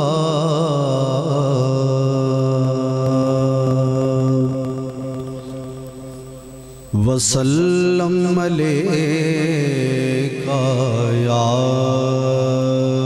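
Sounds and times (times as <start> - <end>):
man singing into a microphone: 0.0 - 13.0.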